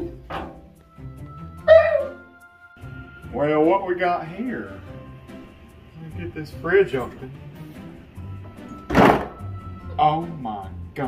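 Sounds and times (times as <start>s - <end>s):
background music: 0.0s - 11.0s
refrigerator door opening: 8.8s - 9.4s.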